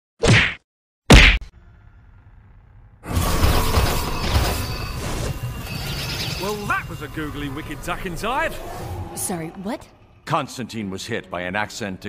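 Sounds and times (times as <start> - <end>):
sharp whacking hits: 0.2 - 1.5
low rumble: 1.6 - 10.5.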